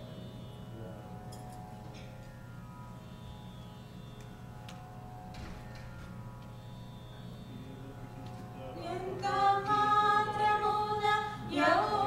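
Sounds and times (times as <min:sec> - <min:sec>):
held musical tones drone: 0:00.0 - 0:12.0.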